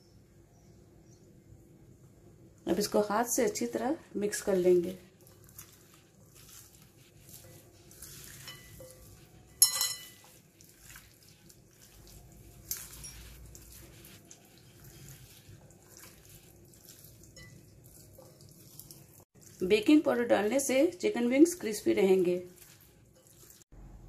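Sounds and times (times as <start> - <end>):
wet squelching of chicken wings: 5.1 - 8.5, 10.3 - 19.6, 22.5 - 23.6
sharp clink: 9.6 - 10.2.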